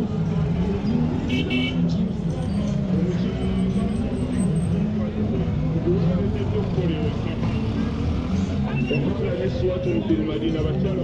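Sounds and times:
road traffic: 0.0 - 11.0
people talking: 1.9 - 11.0.

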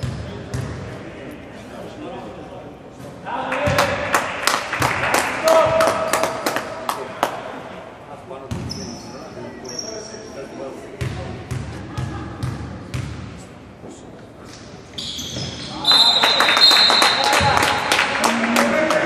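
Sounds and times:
sneaker squeaks: 8.5 - 11.2, 14.6 - 17.3.

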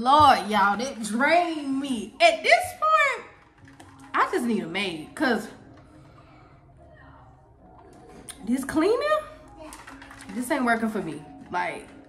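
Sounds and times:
woman speaking: 0.0 - 3.3, 4.1 - 5.6, 8.3 - 9.3, 10.3 - 12.0.

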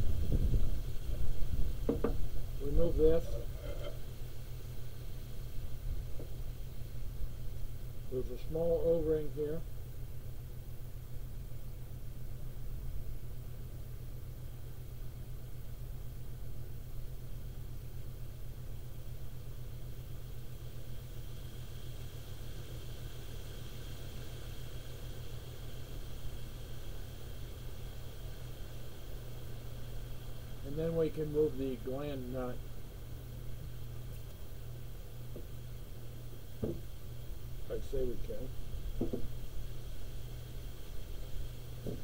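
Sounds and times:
low mechanical hum: 0.0 - 42.0.

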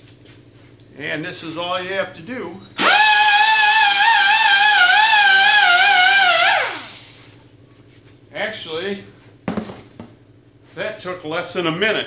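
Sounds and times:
air grinder whining: 2.8 - 7.2.

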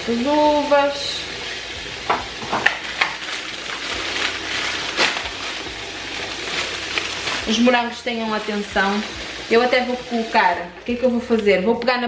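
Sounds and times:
tap water splashing into sink: 2.0 - 3.2
plastic boxes crinkling and knocking: 2.1 - 8.6.

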